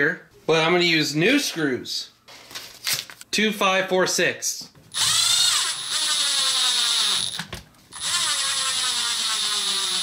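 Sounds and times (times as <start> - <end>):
electric screwdriver whine: 4.9 - 10.0.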